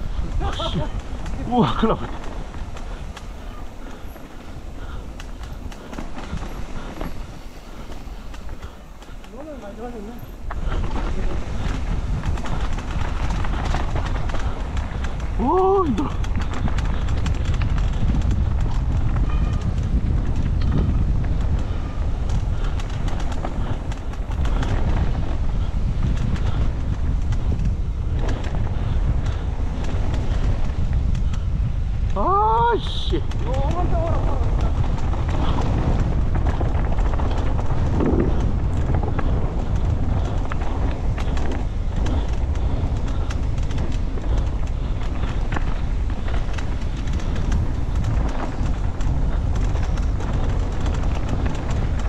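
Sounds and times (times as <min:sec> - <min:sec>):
mountain bike rattling on dirt: 0:00.0 - 0:52.0
wind on microphone: 0:00.0 - 0:52.0.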